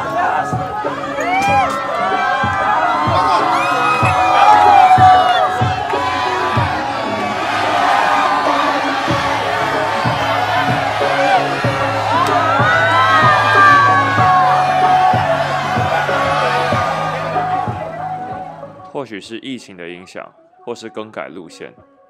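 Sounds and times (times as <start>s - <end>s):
dance music with bass beat: 0.0s - 18.8s
people whooping and cheering: 0.0s - 18.9s.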